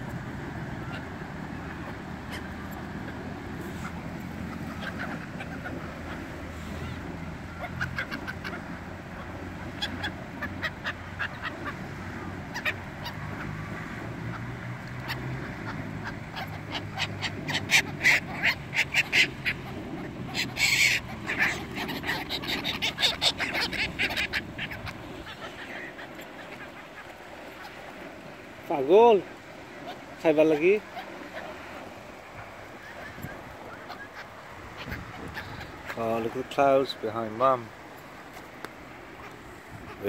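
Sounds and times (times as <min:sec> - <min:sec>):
birds giving short sharp calls: 0:14.3 - 0:28.1, 0:29.5 - 0:36.5.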